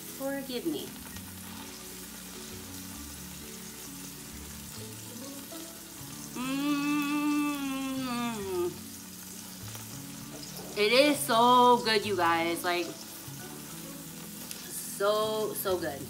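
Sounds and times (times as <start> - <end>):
soft background music: 0.0 - 16.0
woman humming while eating: 6.2 - 8.9.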